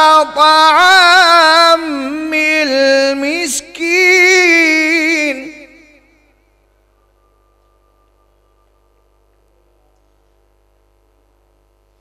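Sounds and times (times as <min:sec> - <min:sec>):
low electrical hum: 0:00.0 - 0:12.0
faint thin tone: 0:06.6 - 0:10.2.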